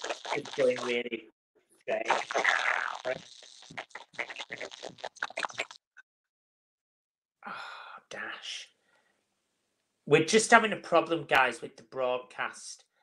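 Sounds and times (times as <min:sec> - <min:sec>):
crackling stutters: 0:00.0 - 0:01.1, 0:01.9 - 0:05.8
garbled live-stream audio: 0:00.0 - 0:05.8, 0:10.1 - 0:12.9.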